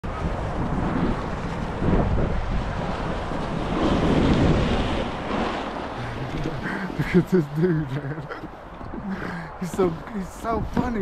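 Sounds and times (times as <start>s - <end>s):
wind buffeting microphone: 0.0s - 11.0s
snowboard sliding on snow: 0.1s - 8.4s, 9.0s - 11.0s.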